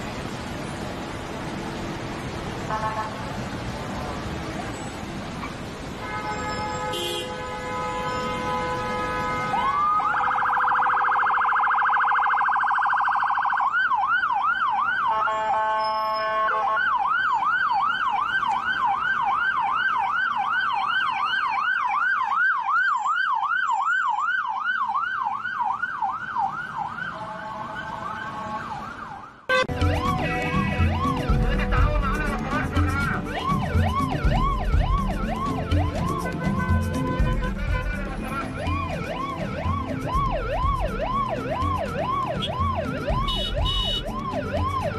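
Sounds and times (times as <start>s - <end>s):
ambulance siren warbling and yelping: 9.5s - 44.9s
steady horn blast: 29.5s - 33.5s, 36.0s - 38.7s, 43.2s - 44.1s
music with low beat: 29.7s - 44.9s.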